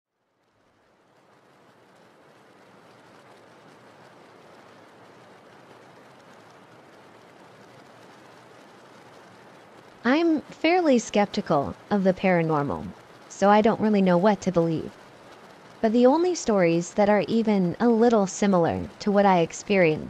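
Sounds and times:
steady rain falling: 0.1 - 20.0.

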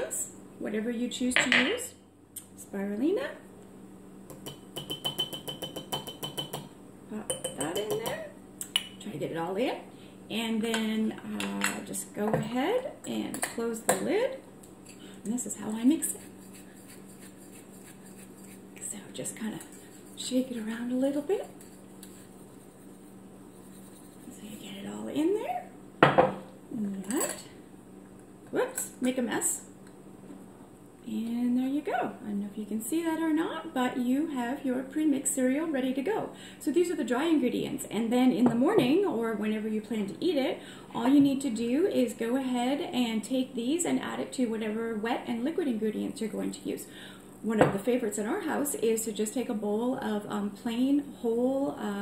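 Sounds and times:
metal spoon tapping canister rim: 4.3 - 6.7, 7.3 - 8.2.

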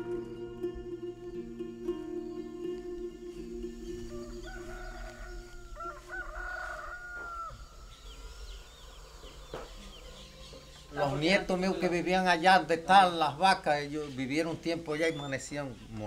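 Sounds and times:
chickens chirping: 0.0 - 16.0
rooster crowing: 2.2 - 10.5.

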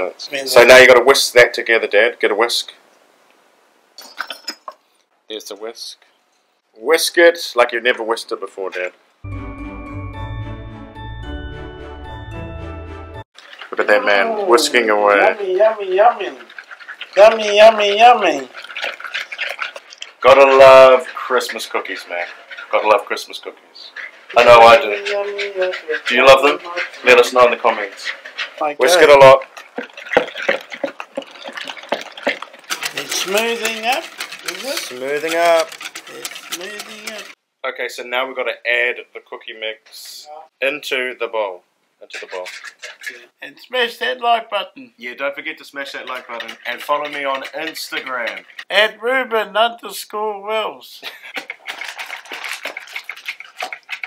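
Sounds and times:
metal utensils clinking: 4.0 - 4.8, 16.0 - 37.4, 45.8 - 48.8
whisk clicking in plastic bowl: 15.2 - 23.0, 24.0 - 37.4, 45.8 - 48.7, 51.3 - 54.0.

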